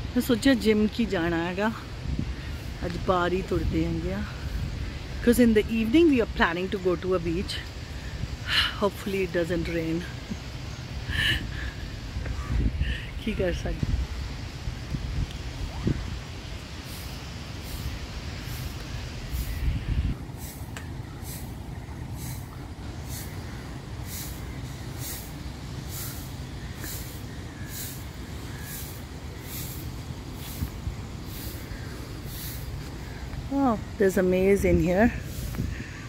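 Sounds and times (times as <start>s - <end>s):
wind rumble on microphone: 0.0s - 36.0s
short high hissy pulses: 16.1s - 21.6s, 22.2s - 33.2s.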